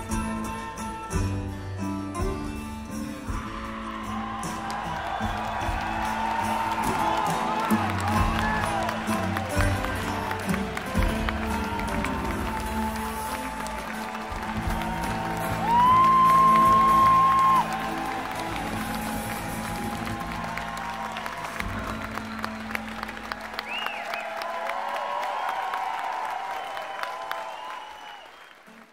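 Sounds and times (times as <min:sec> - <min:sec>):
rock band playing: 0:00.0 - 0:23.7
crowd applauding and cheering: 0:00.0 - 0:28.9
loud whistle from crowd: 0:21.0 - 0:24.6, 0:25.2 - 0:28.9.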